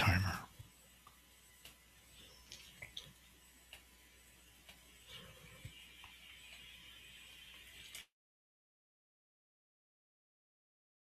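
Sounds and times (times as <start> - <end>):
faint steady hiss: 0.0 - 8.1
faint computer mouse clicks: 0.6 - 1.8, 2.4 - 3.9.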